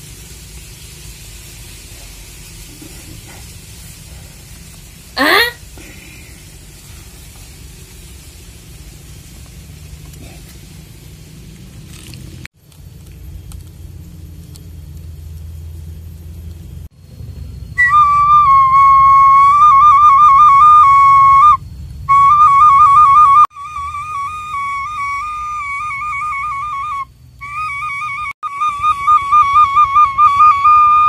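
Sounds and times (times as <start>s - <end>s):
low steady rumble: 0.0s - 31.0s
flute melody with trills: 17.8s - 31.0s.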